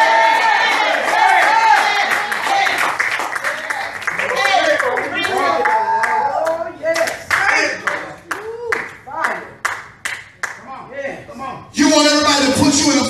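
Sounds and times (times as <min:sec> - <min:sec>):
hand clapping: 0:00.6 - 0:10.7.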